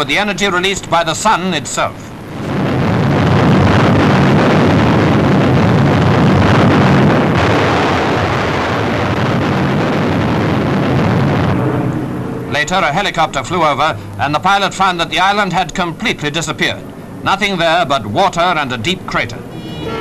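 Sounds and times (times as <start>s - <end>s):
deep explosion rumble: 2.1s - 20.0s.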